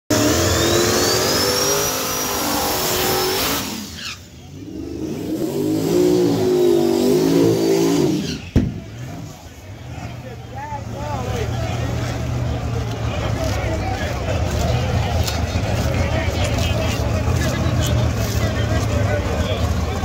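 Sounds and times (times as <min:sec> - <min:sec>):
car engine revving: 0:00.1 - 0:20.0.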